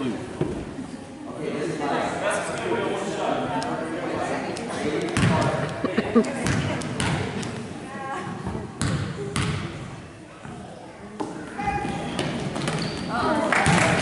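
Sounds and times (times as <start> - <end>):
spectators chattering: 0.0 - 14.0.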